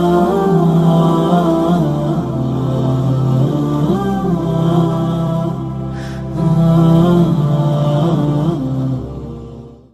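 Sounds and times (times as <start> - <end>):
devotional chant melody: 0.0 - 9.9
steady low drone: 0.0 - 9.9.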